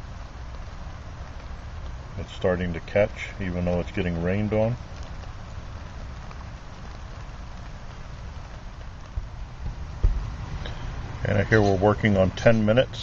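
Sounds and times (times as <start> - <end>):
light rain patter: 0.0 - 13.0
low rumble: 4.3 - 11.6
dull thumps: 9.1 - 10.3.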